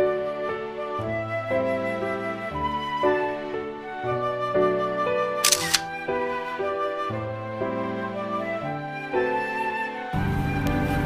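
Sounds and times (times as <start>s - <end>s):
instrumental music with flute: 0.0s - 11.0s
camera shutter click: 5.4s - 6.0s.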